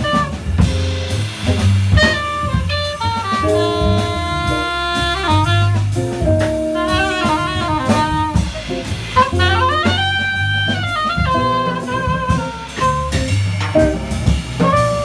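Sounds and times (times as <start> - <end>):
soprano saxophone melody: 0.0 - 0.7, 2.0 - 14.0, 14.6 - 15.0
drum kit with cymbals: 0.0 - 15.0
upright bass: 0.0 - 15.0.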